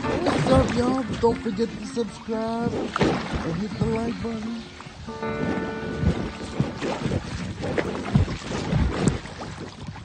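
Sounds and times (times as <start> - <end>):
water splashing around boat: 0.0 - 10.0
wind buffeting microphone: 0.0 - 10.0.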